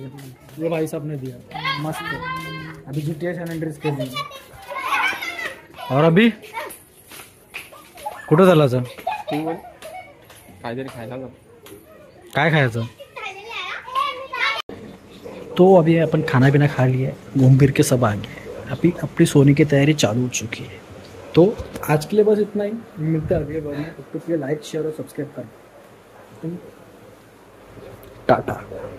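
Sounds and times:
children calling and chattering: 0.0 - 28.9.

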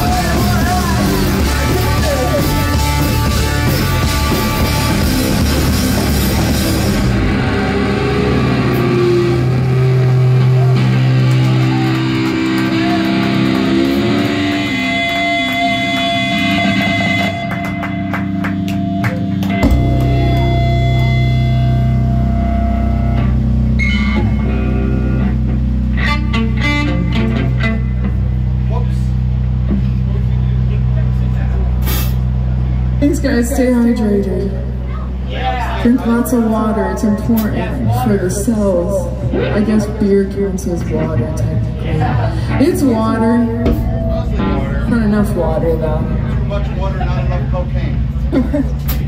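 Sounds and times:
drums and cymbals: 0.0 - 7.8, 31.8 - 32.3
bass guitar: 0.0 - 49.0
electric guitar: 0.0 - 49.0
amplifier electric hum: 18.2 - 49.0.

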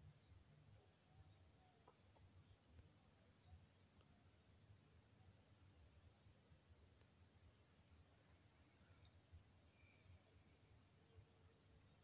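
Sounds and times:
insect chirps: 0.0 - 2.3, 5.1 - 11.0.

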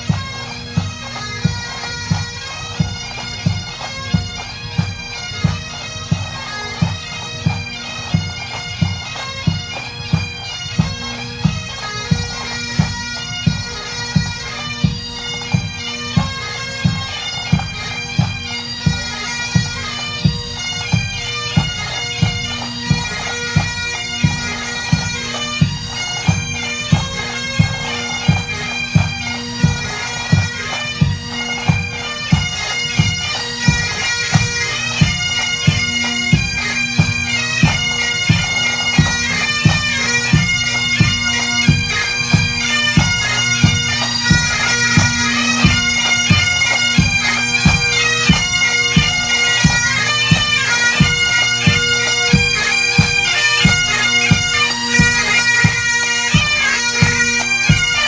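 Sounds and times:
bagpipes playing a march: 0.0 - 58.0
marching drum beat: 2.8 - 58.0.

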